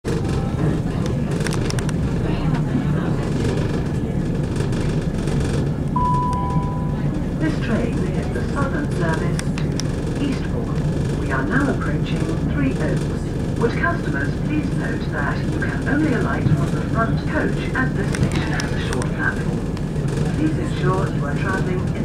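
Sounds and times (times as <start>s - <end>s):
diesel engine rumble: 0.1s - 22.0s
train wheels on track: 0.1s - 22.0s
two-note descending tone: 6.0s - 7.2s
voices: 6.0s - 22.0s.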